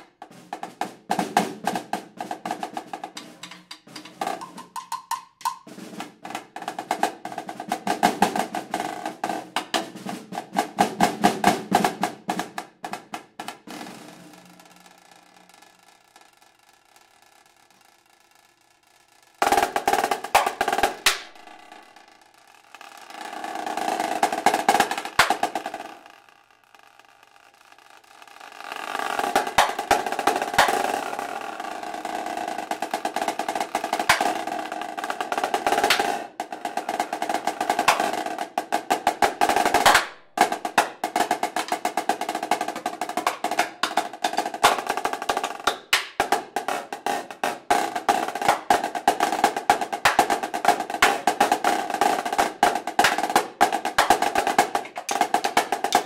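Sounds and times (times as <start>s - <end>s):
snare drum strokes and rolls: 0.0s - 16.4s, 19.4s - 26.3s, 27.5s - 56.0s.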